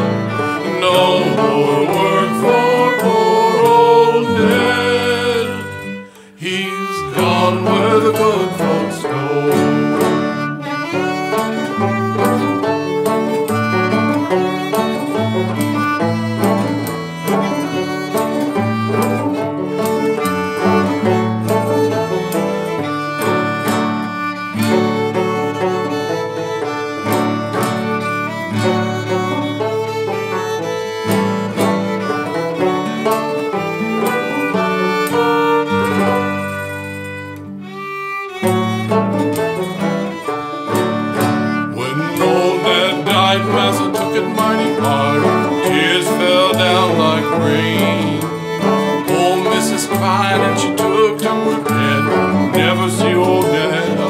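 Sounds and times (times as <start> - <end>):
fiddle: 0.0 - 54.0
old-time string band playing: 0.0 - 54.0.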